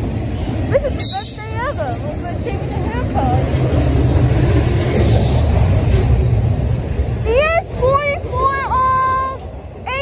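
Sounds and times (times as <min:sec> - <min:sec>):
freight train wheels rumbling on rails: 0:00.0 - 0:10.0.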